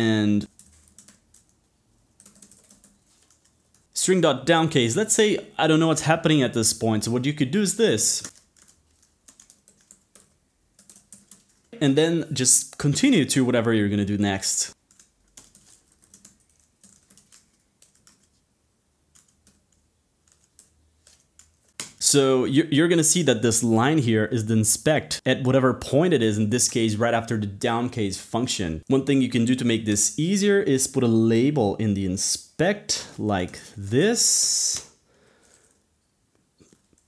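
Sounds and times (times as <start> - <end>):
computer keyboard typing: 0.4 - 3.9, 8.2 - 11.7, 14.7 - 18.4, 19.0 - 22.0, 36.6 - 37.0.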